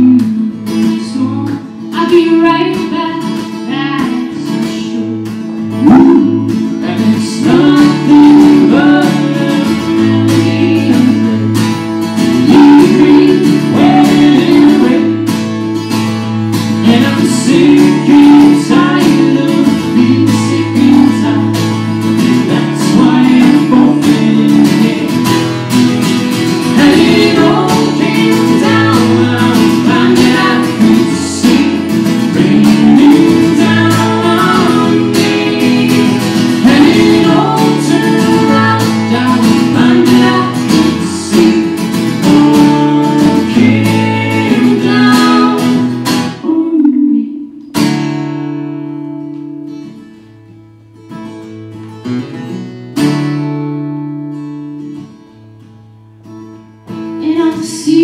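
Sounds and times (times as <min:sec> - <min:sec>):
woman singing: 0:00.0 - 0:11.5, 0:12.3 - 0:15.3, 0:16.8 - 0:21.5, 0:22.3 - 0:25.3, 0:26.7 - 0:47.6, 0:57.2 - 0:58.0
strummed acoustic guitar: 0:00.0 - 0:58.0.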